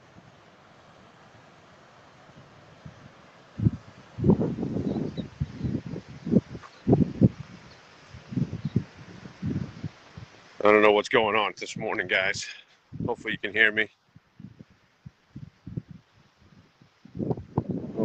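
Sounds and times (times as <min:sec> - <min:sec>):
wind buffeting microphone: 0:02.3 - 0:10.4, 0:11.7 - 0:13.5, 0:14.1 - 0:18.0.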